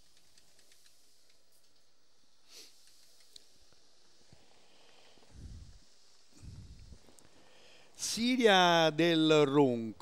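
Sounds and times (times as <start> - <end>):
faint ticks: 0.0 - 1.9, 2.6 - 5.4
faint steady hiss: 0.0 - 10.0.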